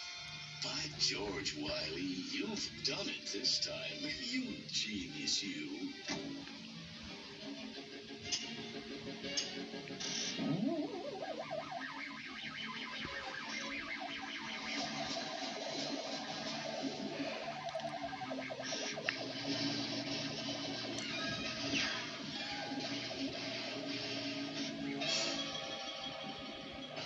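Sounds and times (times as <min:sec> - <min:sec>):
orchestral cartoon music from television: 0:00.0 - 0:27.0.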